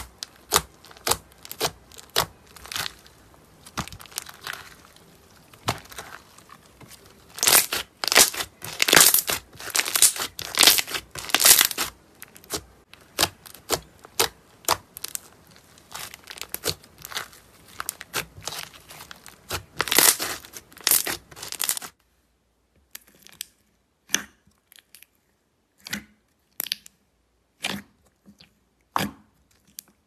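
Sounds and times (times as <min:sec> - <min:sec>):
hands squishing crackly slime: 0:00.0 - 0:22.0.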